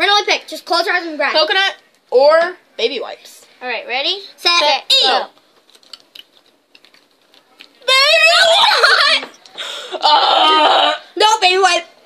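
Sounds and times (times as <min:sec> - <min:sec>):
girl speaking: 0:00.0 - 0:05.4, 0:07.8 - 0:09.4, 0:11.0 - 0:12.0
jelly beans chewed and handled: 0:05.3 - 0:07.8.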